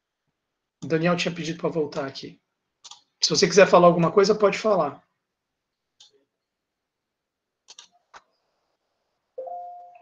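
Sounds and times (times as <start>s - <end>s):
electronic chime: 9.4s - 10.0s.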